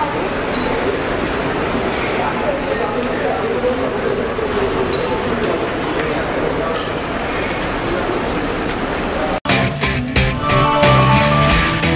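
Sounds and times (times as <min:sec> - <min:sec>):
indistinct voices: 0:10.2 - 0:11.9.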